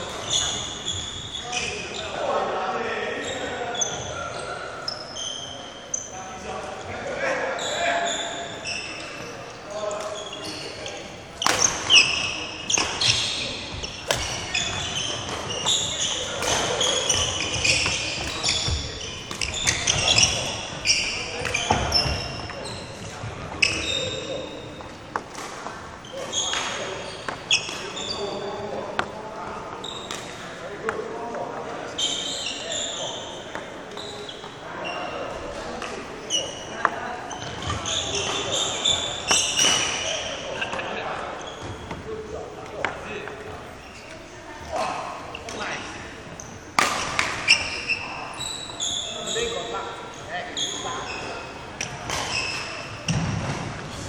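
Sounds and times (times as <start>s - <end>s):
shoes squeaking on wooden floor: 0.0s - 2.2s, 3.0s - 30.5s, 31.3s - 54.0s
badminton racket hitting shuttlecock: 14.0s - 20.0s.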